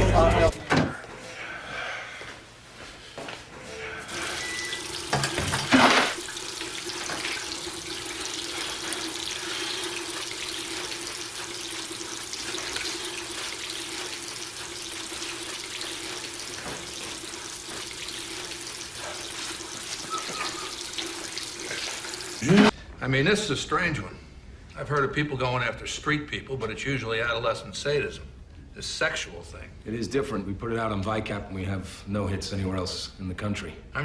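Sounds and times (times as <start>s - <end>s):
tap running into sink basin: 4.7s - 9.3s.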